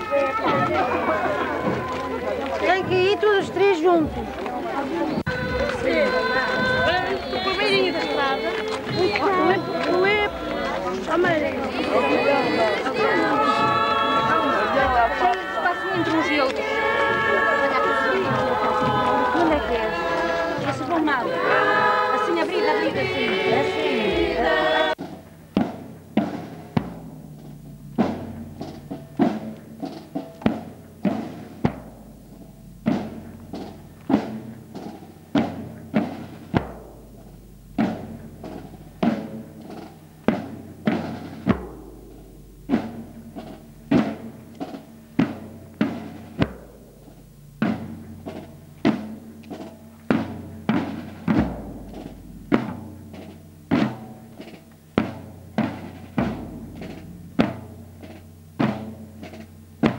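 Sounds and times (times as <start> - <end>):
side drums beating: 0.0 - 59.9
bass drum booms: 5.1 - 59.9.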